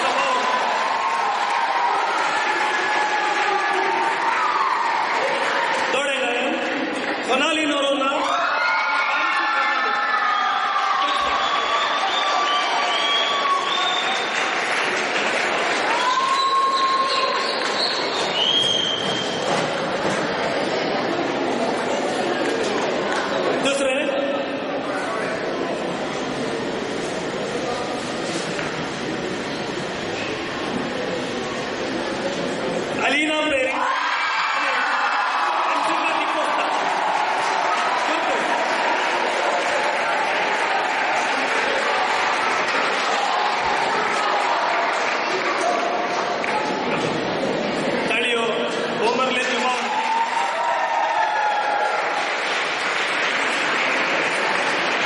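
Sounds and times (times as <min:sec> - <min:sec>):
audience applauding: 0:00.0 - 0:07.8, 0:08.6 - 0:20.0, 0:33.9 - 0:47.0, 0:49.1 - 0:55.0.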